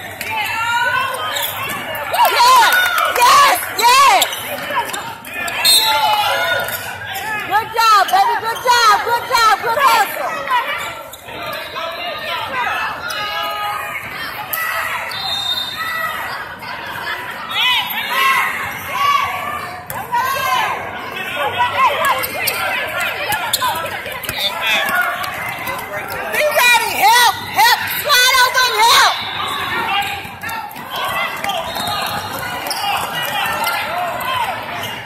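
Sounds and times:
voices calling out: 0:00.0 - 0:35.0.

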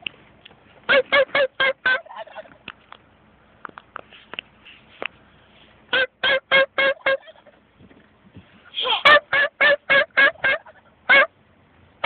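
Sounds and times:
turkey yelping: 0:00.9 - 0:02.6, 0:05.9 - 0:07.6, 0:08.9 - 0:11.3.

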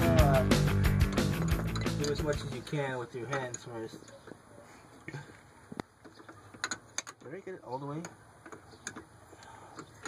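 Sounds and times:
fuel-line fitting clicking: 0:00.9 - 0:02.6.

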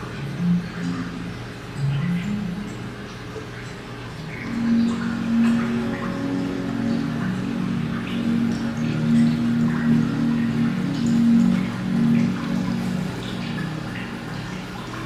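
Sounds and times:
slow low background music: 0:00.0 - 0:15.0
water dripping into tank: 0:00.0 - 0:15.0.

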